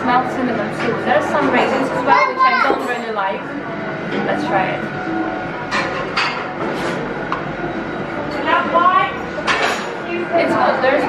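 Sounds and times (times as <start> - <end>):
customers chattering: 0.0 - 11.0.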